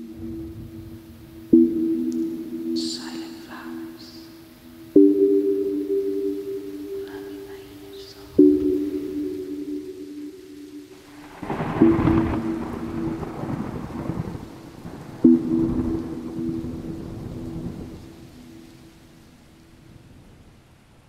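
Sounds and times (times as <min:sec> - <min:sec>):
low two-note musical tone: 0:00.0 - 0:13.8
thunder rumbling: 0:00.0 - 0:21.0.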